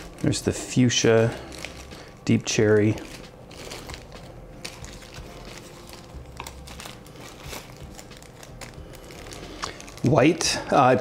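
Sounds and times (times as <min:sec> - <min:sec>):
plastic packets crinkling: 0:00.0 - 0:11.0.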